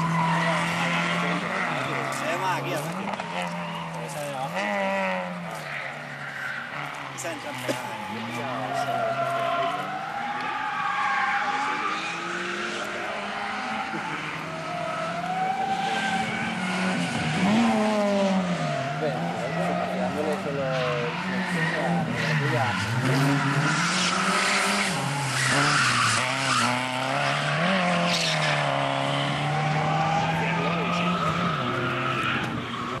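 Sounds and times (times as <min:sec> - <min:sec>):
racing car engines: 0:00.0 - 0:33.0
people talking: 0:00.3 - 0:05.8, 0:07.2 - 0:10.6, 0:15.3 - 0:16.4, 0:18.8 - 0:22.9, 0:30.1 - 0:31.6.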